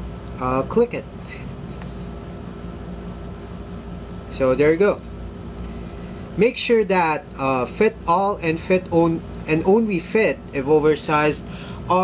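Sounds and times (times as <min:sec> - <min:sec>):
room noise hum and hiss: 0:00.0 - 0:12.0
steady humming tones: 0:00.0 - 0:12.0.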